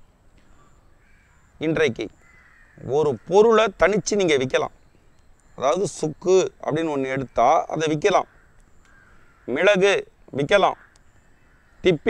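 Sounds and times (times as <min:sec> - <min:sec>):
distant bird call: 0:00.0 - 0:12.0
man talking: 0:01.6 - 0:02.1, 0:02.8 - 0:04.7, 0:05.6 - 0:08.3, 0:09.5 - 0:10.8.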